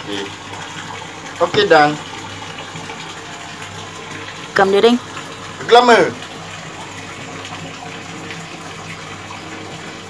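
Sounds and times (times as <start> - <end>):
running water: 0.0 - 10.0.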